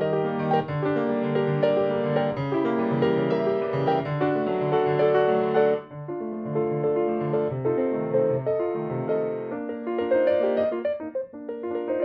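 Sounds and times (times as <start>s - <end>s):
solo piano classical music: 0.0s - 12.0s.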